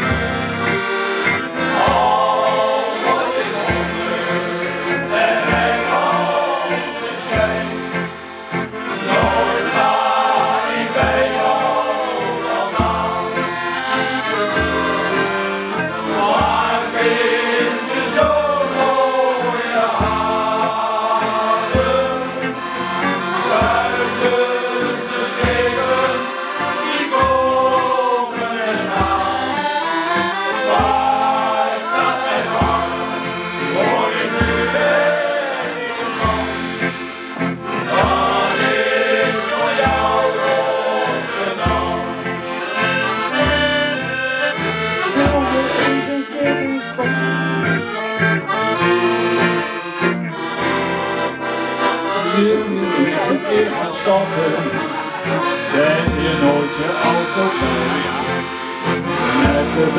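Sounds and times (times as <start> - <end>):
accordions playing a sea shanty: 0.0 - 59.9
choir singing: 0.0 - 59.9
steady bass beat: 30.6 - 51.2.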